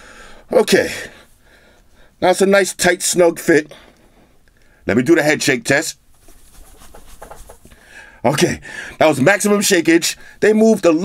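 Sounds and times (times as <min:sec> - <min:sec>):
faint rustling and shuffling: 0:06.0 - 0:07.9.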